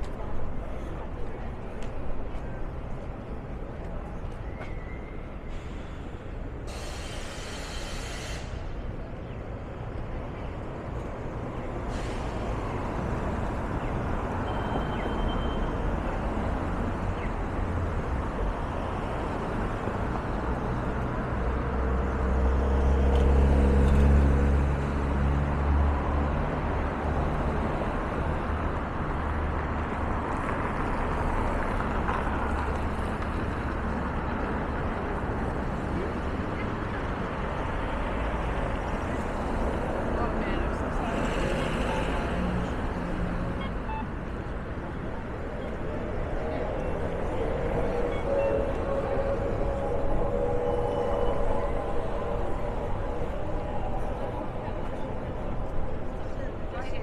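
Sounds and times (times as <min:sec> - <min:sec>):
street traffic: 0:00.0 - 0:57.0.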